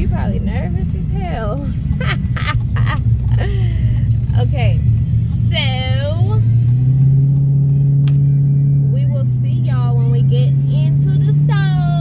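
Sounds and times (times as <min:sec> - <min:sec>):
car engine drone inside cabin: 0:00.0 - 0:12.0
road noise: 0:00.0 - 0:12.0.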